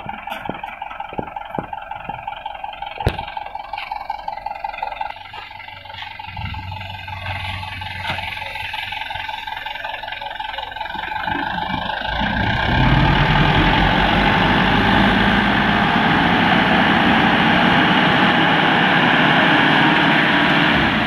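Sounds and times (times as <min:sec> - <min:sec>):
diesel truck engine revving: 0:00.0 - 0:21.0.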